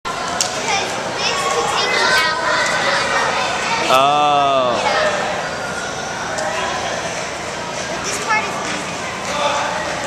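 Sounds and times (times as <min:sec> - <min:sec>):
children chattering and calling: 0:00.1 - 0:10.0.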